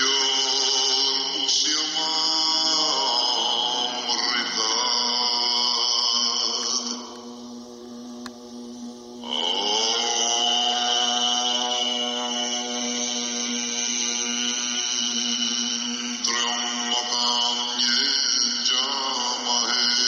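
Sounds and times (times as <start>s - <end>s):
chanted drone: 0.0s - 20.0s.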